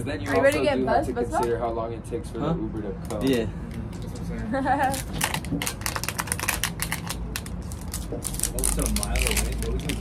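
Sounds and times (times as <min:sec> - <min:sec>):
plastic packaging crinkling: 0:04.9 - 0:10.0.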